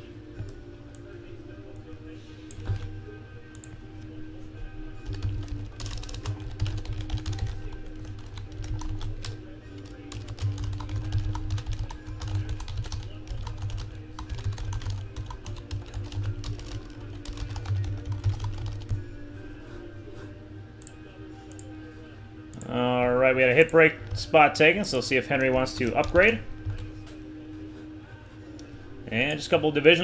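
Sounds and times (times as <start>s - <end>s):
computer keyboard typing: 5.0s - 19.0s, 25.3s - 26.9s.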